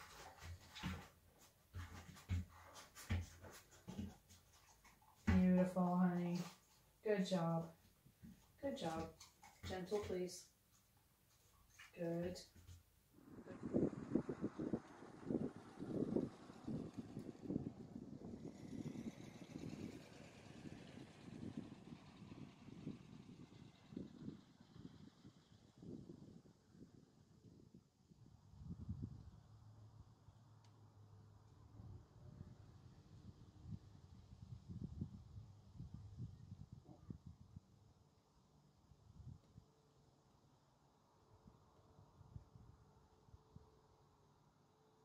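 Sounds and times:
scuffs on wooden floor: 0:00.0 - 0:07.0, 0:07.6 - 0:12.9
faint steady background: 0:00.0 - 0:45.0.

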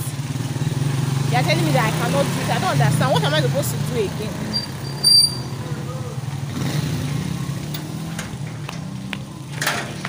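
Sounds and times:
motorcycle engine passing: 0:00.0 - 0:10.0.

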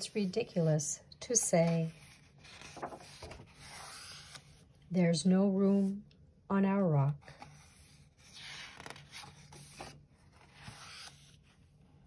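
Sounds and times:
book pages turning: 0:01.6 - 0:04.7, 0:07.3 - 0:11.6.

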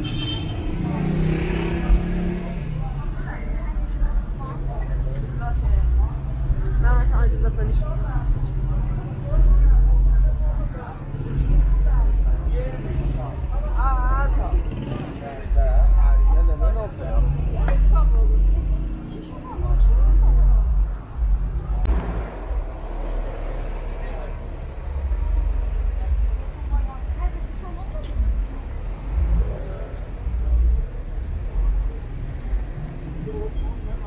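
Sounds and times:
passersby talking: 0:00.0 - 0:34.0
road traffic rumble: 0:00.0 - 0:34.0
rush of noise: 0:21.2 - 0:25.5.

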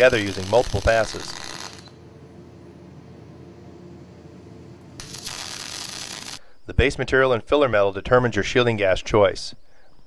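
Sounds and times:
welding arc hissing: 0:00.0 - 0:02.0, 0:05.0 - 0:06.4
faint low hum: 0:00.0 - 0:10.0.

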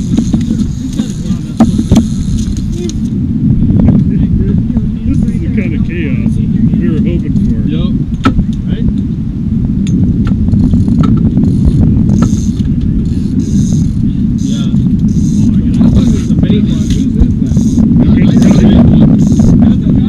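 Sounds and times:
faint voices: 0:00.0 - 0:03.1, 0:11.6 - 0:20.0
fishing rods and reels clicking: 0:00.0 - 0:03.2, 0:10.2 - 0:17.8, 0:18.4 - 0:19.6
low rumble on boat deck: 0:00.0 - 0:20.0.

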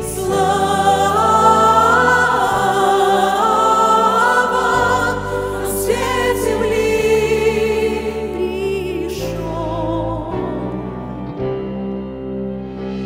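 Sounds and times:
choir singing: 0:00.0 - 0:11.6.

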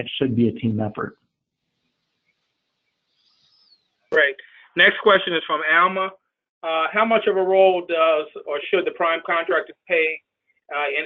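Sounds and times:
faint high chirp: 0:02.2 - 0:04.1.

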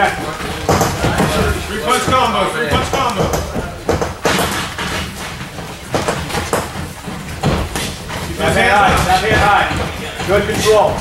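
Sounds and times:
background gym voices: 0:00.0 - 0:11.0
footwork on ring canvas: 0:00.0 - 0:11.0.

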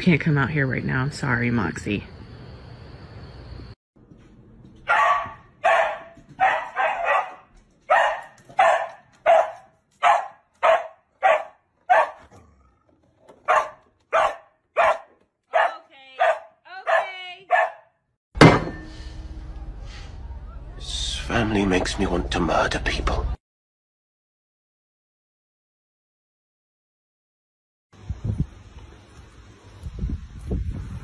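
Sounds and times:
dog barking: 0:04.8 - 0:12.5, 0:13.4 - 0:17.9.

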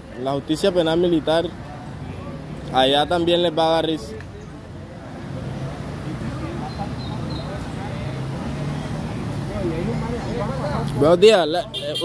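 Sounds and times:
faint voices: 0:00.0 - 0:12.0
street traffic: 0:00.0 - 0:12.0.

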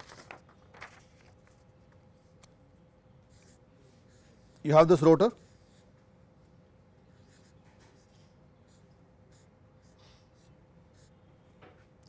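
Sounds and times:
marker pen scratching on paper: 0:03.2 - 0:11.9.

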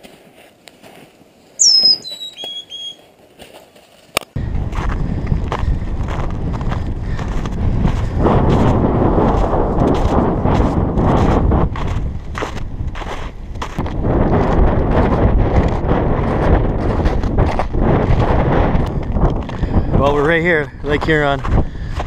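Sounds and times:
footsteps crunching on snow: 0:00.0 - 0:19.8, 0:20.9 - 0:22.0
wind buffeting microphone: 0:04.4 - 0:22.0.

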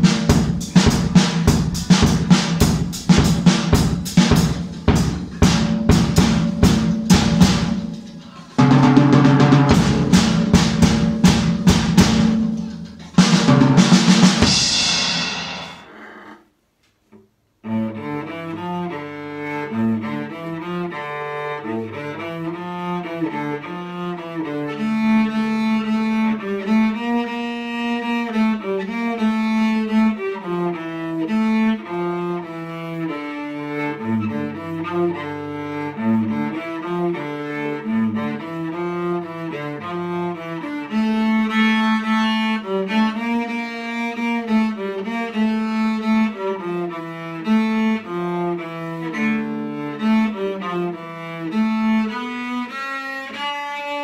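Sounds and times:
drum kit playing: 0:00.0 - 0:16.0
bowed cello melody: 0:00.0 - 0:16.2, 0:17.6 - 0:54.0
cymbals ringing: 0:03.8 - 0:15.9.

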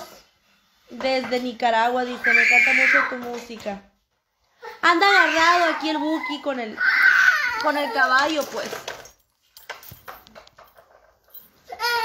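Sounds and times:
small child crying: 0:02.1 - 0:03.2, 0:04.6 - 0:08.2, 0:11.7 - 0:12.0.

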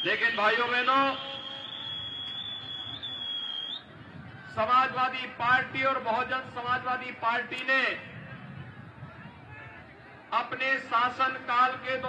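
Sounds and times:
high-pitched microphone feedback whistle: 0:00.0 - 0:03.9
background noise: 0:00.0 - 0:12.0.

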